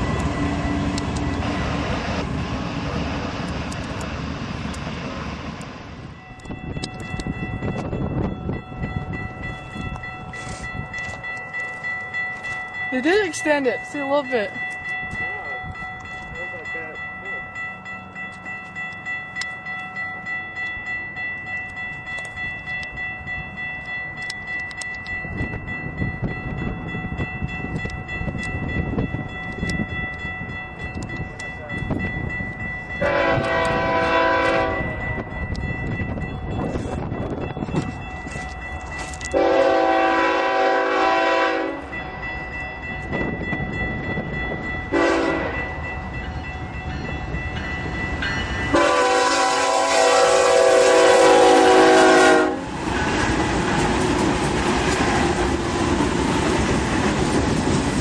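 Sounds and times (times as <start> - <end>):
locomotives rumbling past: 0.0 - 11.5, 25.2 - 58.0
crossing bell ringing: 0.0 - 54.6
locomotive air horn blasts: 33.0 - 35.0, 39.3 - 41.9, 44.9 - 45.6, 48.7 - 52.7.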